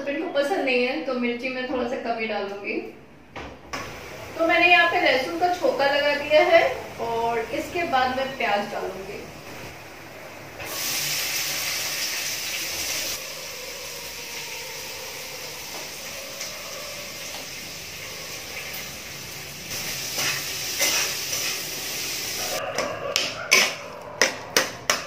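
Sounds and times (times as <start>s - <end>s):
onions sizzling in oil: 3.8s - 22.6s
spatula scraping pan: 19.8s - 21.8s, 23.5s - 24.7s.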